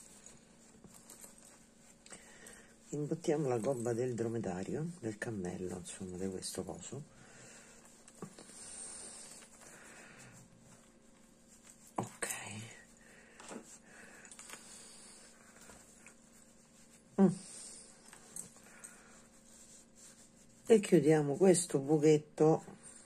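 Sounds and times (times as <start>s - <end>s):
faint steady hum: 0.0s - 23.0s
soft rustling of stuffing: 0.0s - 23.0s.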